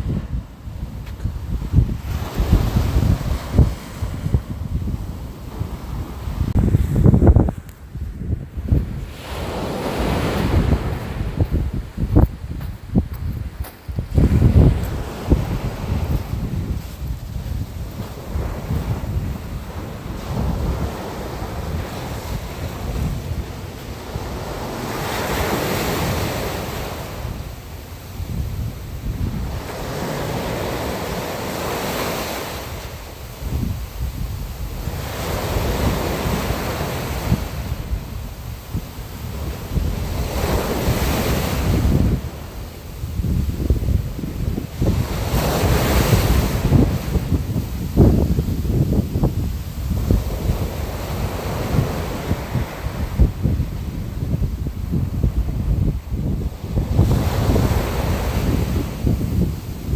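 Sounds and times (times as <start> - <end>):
ocean waves washing in: 0.0 - 12.8, 13.9 - 59.9
low wind rumble: 0.0 - 59.9.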